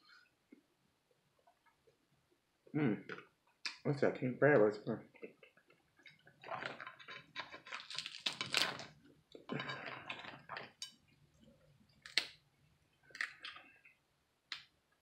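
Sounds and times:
crab shells cracking and snapping: 5.5s - 11.0s, 11.9s - 13.7s.

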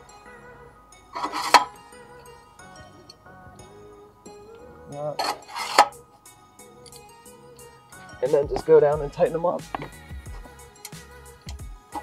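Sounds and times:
background music: 0.0s - 12.0s
metal scraping and clinking: 1.2s - 1.8s, 5.1s - 6.0s.

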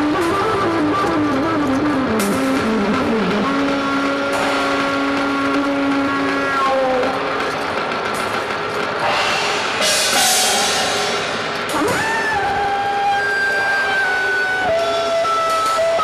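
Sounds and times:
dense electronic music: 0.3s - 12.7s
cymbal swell: 9.0s - 13.9s.

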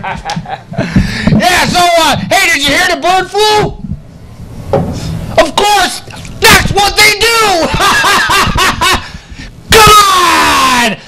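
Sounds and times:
man laughing into microphone: 0.0s - 1.1s, 7.6s - 9.2s
man shouting: 5.4s - 7.7s, 9.7s - 11.0s.

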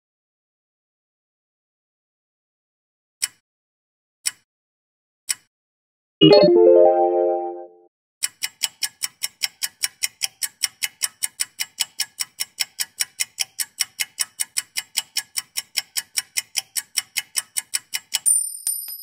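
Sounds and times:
clock ticking: 8.2s - 18.2s.

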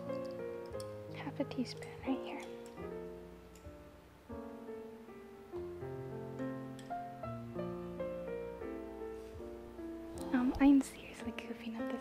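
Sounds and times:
piano music: 0.0s - 12.0s.

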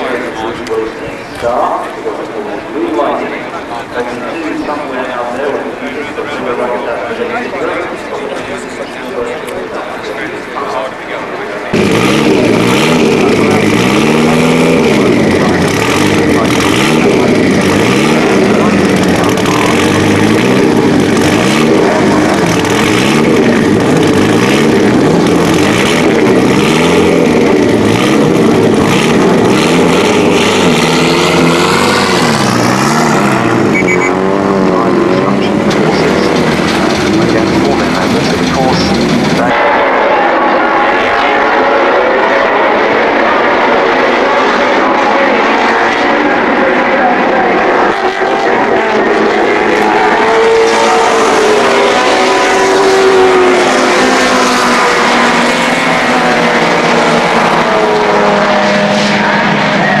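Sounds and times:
car engine revving: 0.0s - 60.0s
racing car engines revving: 0.0s - 60.0s.

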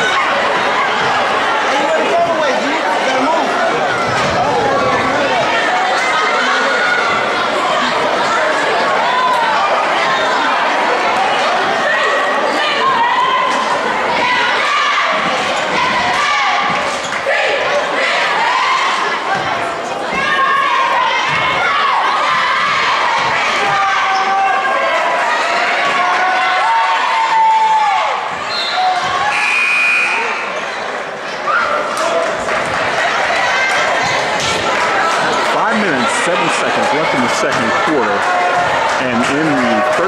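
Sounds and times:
people talking: 0.0s - 23.7s, 31.7s - 40.0s.

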